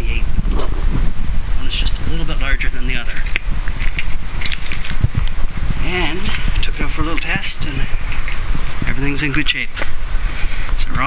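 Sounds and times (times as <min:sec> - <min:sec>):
man talking: 0:00.0 - 0:00.3, 0:01.6 - 0:03.4, 0:05.8 - 0:08.1, 0:08.8 - 0:10.0, 0:10.8 - 0:11.0
steady low rumble: 0:00.0 - 0:11.0.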